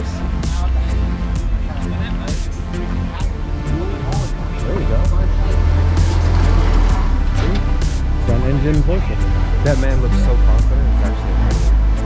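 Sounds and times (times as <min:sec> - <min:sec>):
background music: 0:00.0 - 0:12.0
car engine rumble passing: 0:00.0 - 0:12.0.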